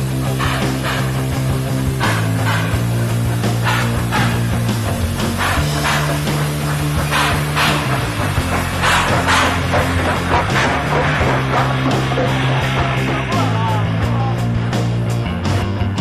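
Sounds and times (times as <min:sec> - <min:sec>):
bass guitar: 0:00.0 - 0:16.0
distorted electric guitar chords: 0:00.0 - 0:16.0
drum beat with snare hits: 0:05.2 - 0:13.8.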